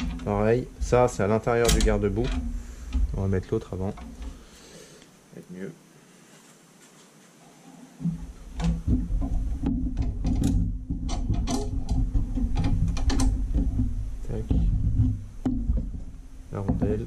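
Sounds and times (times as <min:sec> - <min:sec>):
metal parts clicking and knocking: 0:00.0 - 0:04.4, 0:08.4 - 0:17.0.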